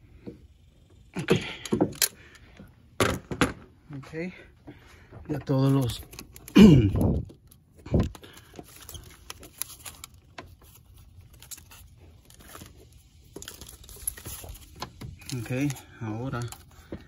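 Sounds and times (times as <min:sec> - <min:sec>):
hands handling a hose: 0:05.2 - 0:17.0
voice: 0:15.3 - 0:16.5.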